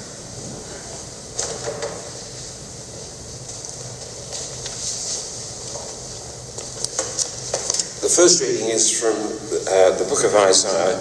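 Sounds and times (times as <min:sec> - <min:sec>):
steady hiss: 0:00.0 - 0:11.0
paper sheets rustling: 0:03.5 - 0:07.9.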